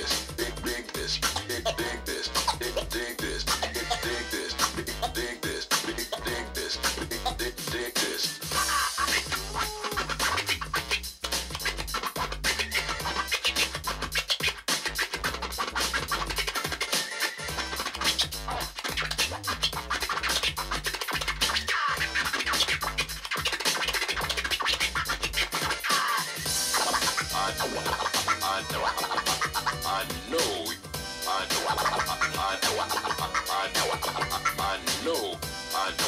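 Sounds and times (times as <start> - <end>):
looping beat: 0.0 - 36.0
turntable scratching: 0.0 - 36.0.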